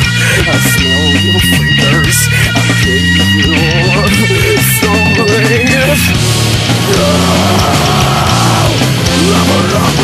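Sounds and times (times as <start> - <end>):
rock music with electric guitar: 0.0 - 10.0.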